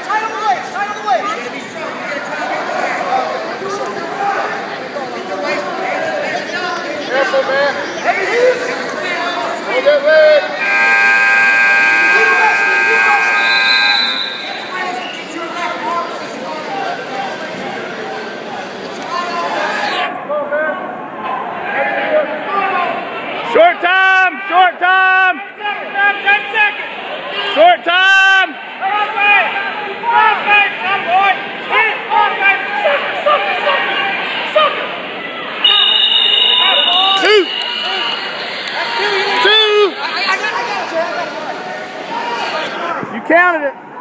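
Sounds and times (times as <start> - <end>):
spectators shouting: 8.1 - 15.4, 22.5 - 43.2
scoreboard buzzer blare: 10.6 - 14.6, 35.7 - 38.2.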